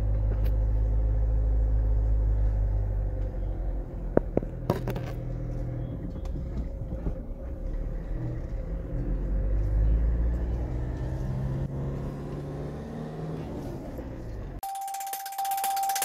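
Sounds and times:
car engine and tyre rumble: 0.0 - 14.6.

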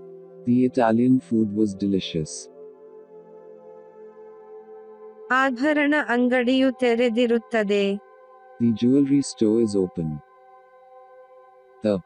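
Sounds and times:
ambient drone music: 0.0 - 12.0.

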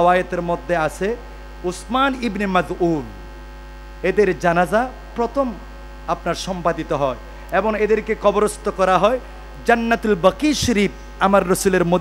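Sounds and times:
man preaching through microphones: 0.0 - 3.1, 4.0 - 12.0
electrical mains hum: 0.0 - 12.0.

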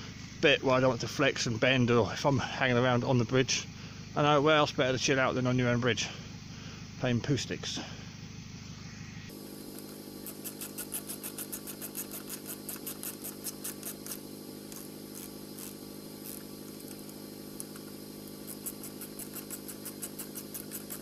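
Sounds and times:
steady low hum: 0.0 - 21.0
screwdriver clicking: 9.8 - 21.0.

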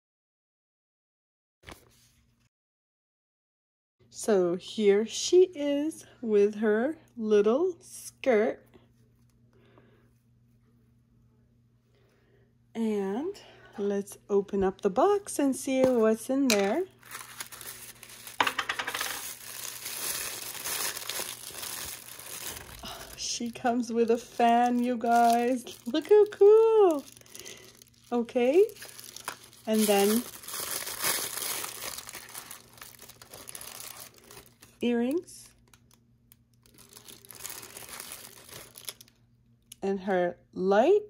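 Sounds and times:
plastic wrapping rustling: 15.8 - 39.2.

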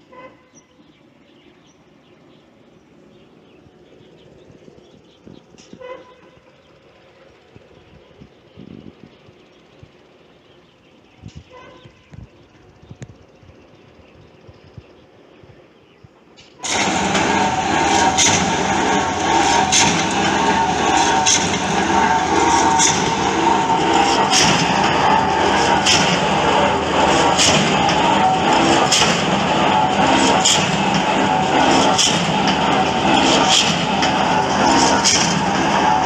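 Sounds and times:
drilling rig machinery din: 16.6 - 36.0.

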